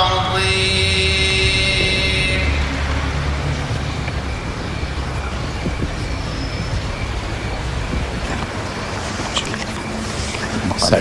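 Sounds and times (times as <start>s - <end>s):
person chanting a long note: 0.0s - 3.5s
low background rumble: 0.0s - 11.0s.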